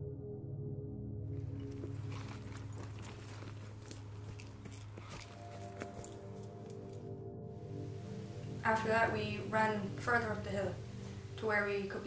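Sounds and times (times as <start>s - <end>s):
low ambient music drone: 0.0s - 12.0s
footsteps running on forest floor: 1.6s - 6.3s.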